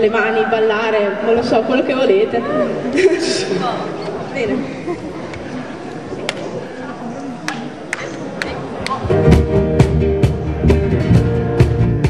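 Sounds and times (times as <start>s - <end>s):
live band playing upbeat music: 9.0s - 12.0s.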